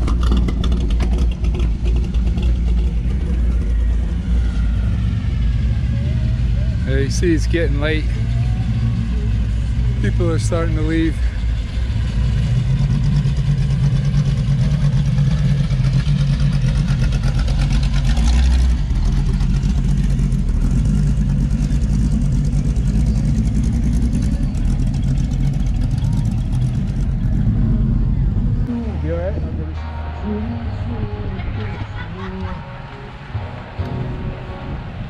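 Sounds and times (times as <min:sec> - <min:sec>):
engine revving: 0:00.0 - 0:35.0
hot rod engine running: 0:00.0 - 0:35.0.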